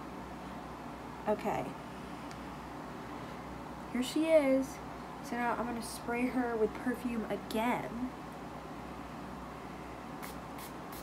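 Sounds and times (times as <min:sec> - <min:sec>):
perfume spray bottle spritzing: 0:10.2 - 0:11.0.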